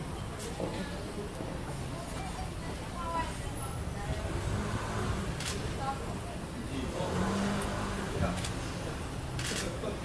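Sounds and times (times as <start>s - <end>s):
vehicle engine hum: 6.6s - 10.0s.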